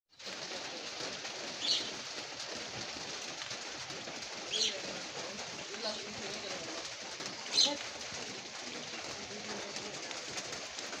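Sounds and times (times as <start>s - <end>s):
rain hissing: 0.1s - 11.0s.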